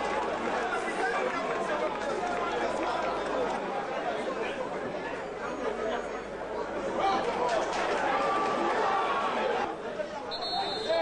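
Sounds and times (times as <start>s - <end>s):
stadium crowd shouting and talking: 0.0s - 11.0s.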